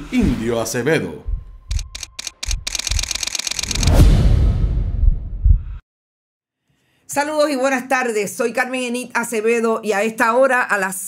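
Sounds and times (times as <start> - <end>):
low thumps: 1.2 - 3.0, 3.8 - 5.8
fast dense ticks: 1.7 - 4.0
sharp clicks: 1.7 - 4.0
whoosh: 3.5 - 5.8.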